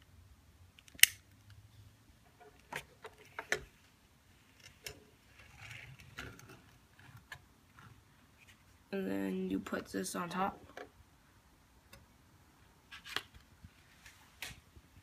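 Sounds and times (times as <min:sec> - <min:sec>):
sharp click: 0:00.8 - 0:01.2.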